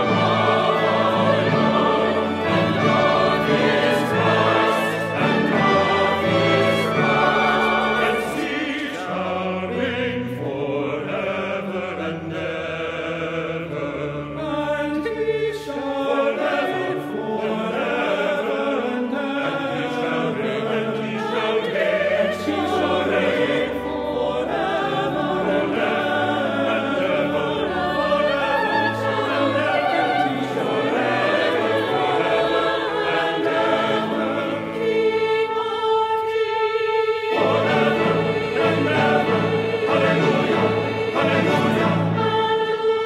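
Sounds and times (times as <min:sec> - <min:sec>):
instrumental accompaniment: 0:00.0 - 0:12.8
mixed choir singing: 0:00.0 - 0:43.0.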